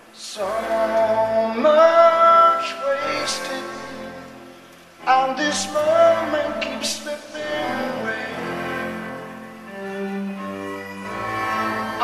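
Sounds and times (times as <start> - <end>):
strings playing sustained chords: 0.0 - 12.0.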